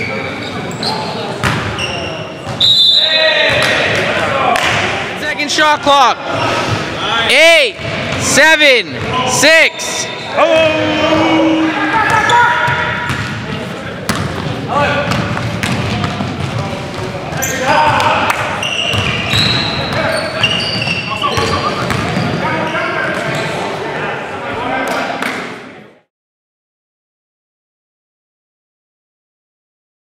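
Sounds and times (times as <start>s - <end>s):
sneakers squeaking: 0.0s - 4.1s, 7.8s - 23.8s
players calling out: 0.0s - 25.0s.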